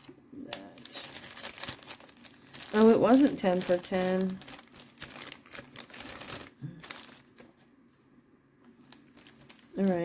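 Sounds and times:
plastic bags clicking and rustling: 0.0 - 7.4, 8.8 - 10.0.

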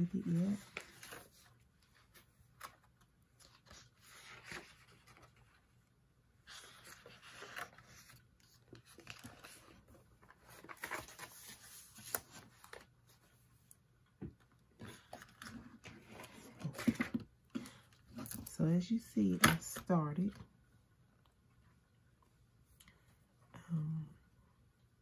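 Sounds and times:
paper envelopes shuffling: 0.0 - 5.8, 6.4 - 13.5, 14.8 - 18.5
pages flipping: 0.1 - 5.6, 6.5 - 13.4.

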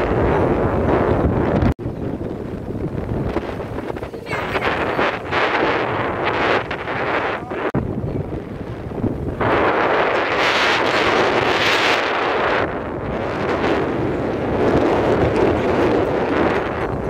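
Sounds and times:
wind buffeting microphone: 0.0 - 17.0
sea surf breaking: 2.1 - 17.0.

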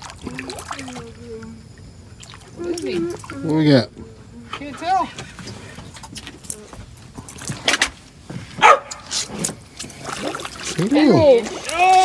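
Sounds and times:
fish splashing in water: 0.0 - 3.5, 9.4 - 12.0
person shouting: 11.0 - 12.0.

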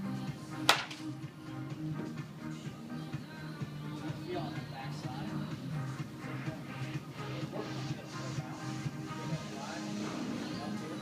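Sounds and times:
background music: 0.0 - 11.0
wooden bat hitting ball: 0.7 - 1.0.

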